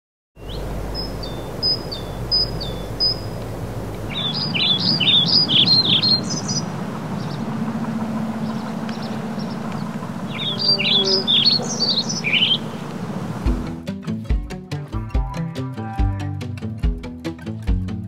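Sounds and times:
high whistled bird calls: 0:00.4 - 0:03.4, 0:04.1 - 0:13.4
fast warbling birdsong: 0:00.4 - 0:13.7
low steady tone: 0:05.4 - 0:13.6.

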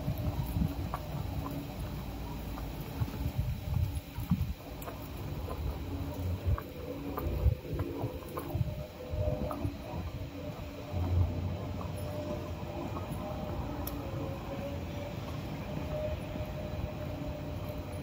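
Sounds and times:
faint wavering hum: 0:00.0 - 0:18.0
vehicle engine rumble: 0:00.0 - 0:18.0.

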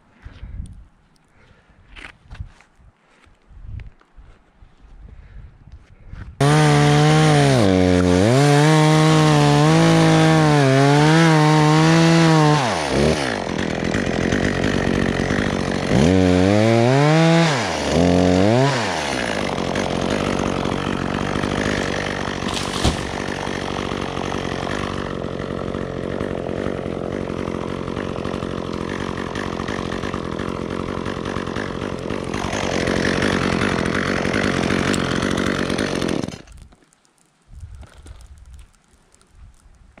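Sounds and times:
chainsaw idling: 0:06.4 - 0:36.6
brushing sawdust off wood: 0:22.4 - 0:23.5.

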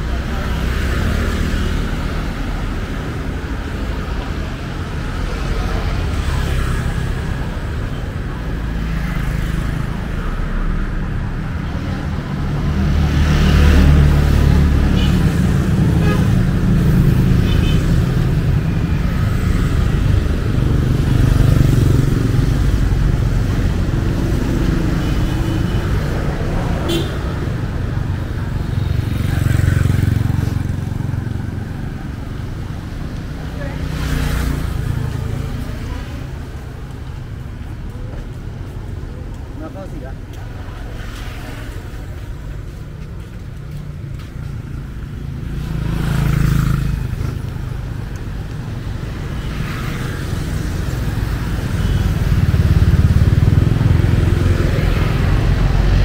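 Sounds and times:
cars and motorbikes passing: 0:00.0 - 0:56.0.

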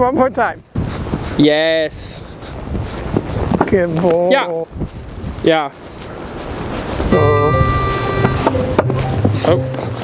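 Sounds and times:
wind rushing on microphone: 0:00.0 - 0:10.0
background music with bass: 0:07.1 - 0:10.0.

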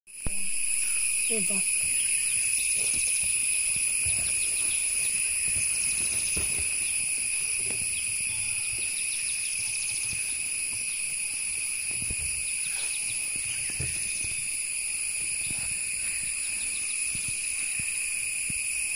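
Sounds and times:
insects droning: 0:00.1 - 0:18.9.

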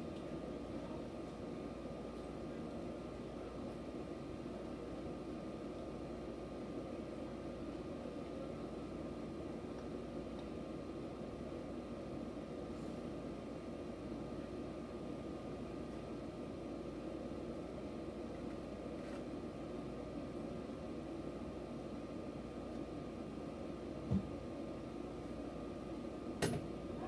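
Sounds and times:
train equipment hum and hiss: 0:00.0 - 0:27.0.

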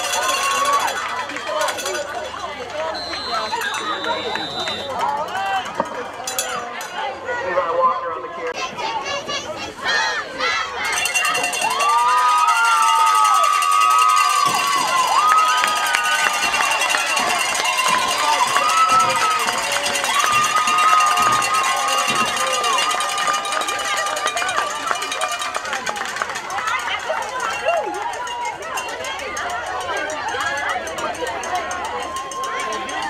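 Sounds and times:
crowd shouting and yelling: 0:00.0 - 0:33.0
long high yells: 0:11.2 - 0:24.0.

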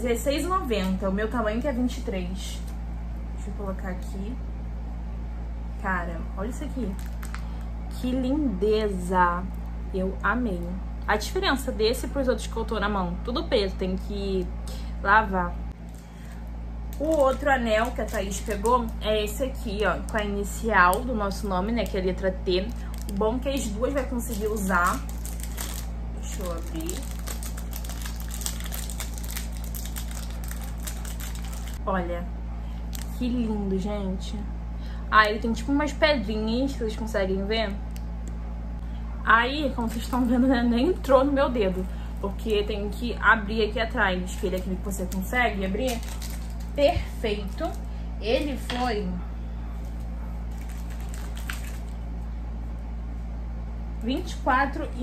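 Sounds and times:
steady low hum: 0:00.0 - 0:55.0
plastic bag crinkling: 0:06.8 - 0:07.7, 0:15.8 - 0:31.8, 0:32.8 - 0:33.2, 0:39.7 - 0:41.0, 0:44.1 - 0:48.7, 0:49.8 - 0:52.2
small objects rustling: 0:15.8 - 0:19.0, 0:22.7 - 0:31.8, 0:44.3 - 0:47.9, 0:49.8 - 0:52.0.

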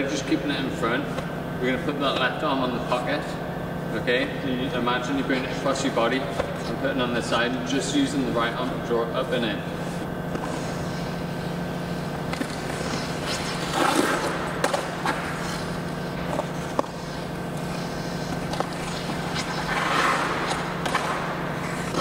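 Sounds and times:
steady low hum: 0:00.0 - 0:22.0
skate blades scraping on ice: 0:12.2 - 0:22.0.

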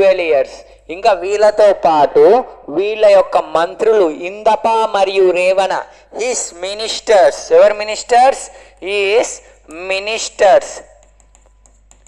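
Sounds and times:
man's voice: 0:00.0 - 0:10.9
pen tapping on touchscreen: 0:10.9 - 0:12.0.

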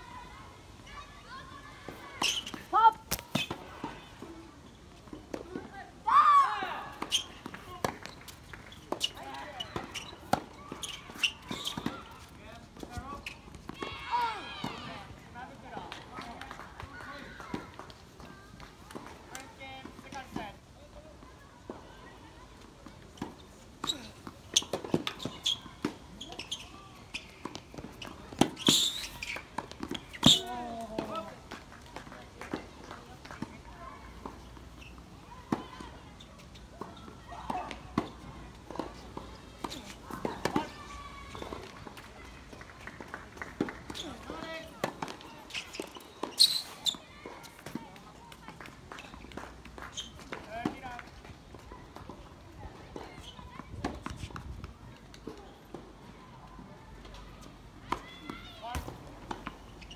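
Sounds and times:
tennis ball bouncing: 0:06.9 - 0:14.0, 0:36.5 - 0:42.0.

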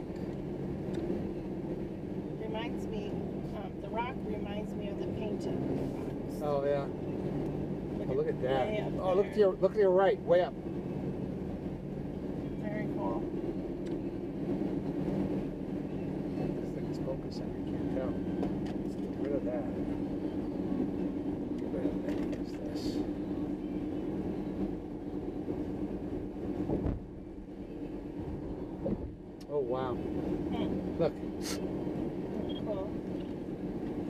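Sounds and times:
car engine and tyre drone: 0:00.0 - 0:34.0.

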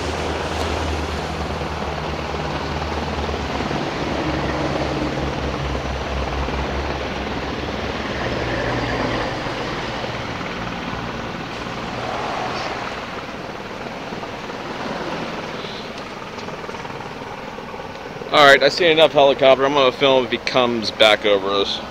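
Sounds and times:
helicopter flying low: 0:00.0 - 0:21.9.

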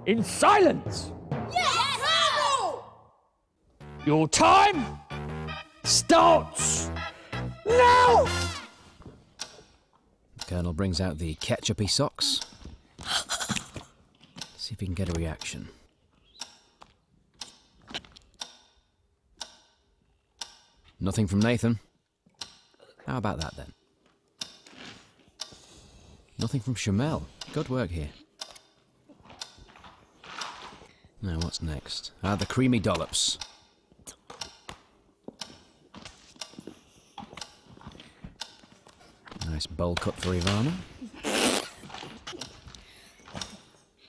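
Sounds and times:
clock ticking: 0:03.8 - 0:08.7, 0:09.3 - 0:12.8, 0:13.6 - 0:24.7, 0:25.4 - 0:25.7, 0:26.4 - 0:29.8, 0:31.2 - 0:35.8, 0:36.4 - 0:41.0, 0:42.2 - 0:43.8.

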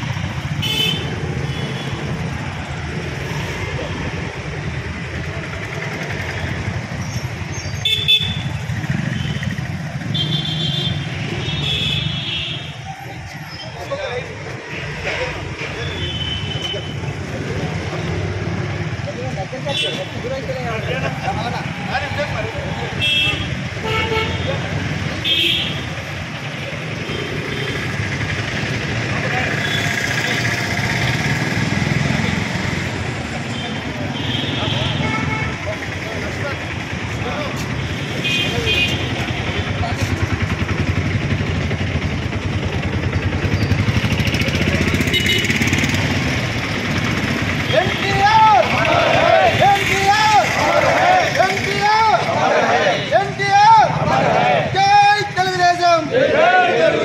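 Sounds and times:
street traffic: 0:00.0 - 0:57.0
vehicle horn toots: 0:45.1 - 0:45.6.

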